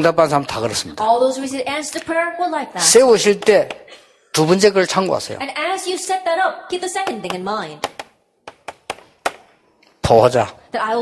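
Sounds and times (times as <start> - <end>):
chalk tapping on blackboard: 7.0 - 9.5.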